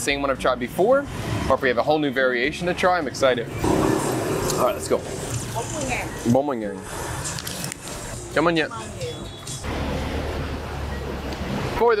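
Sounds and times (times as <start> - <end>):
low street background: 0.0 - 12.0.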